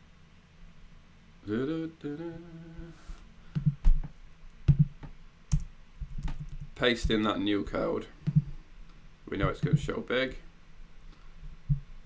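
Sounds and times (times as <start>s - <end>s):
man humming: 1.4s - 3.2s.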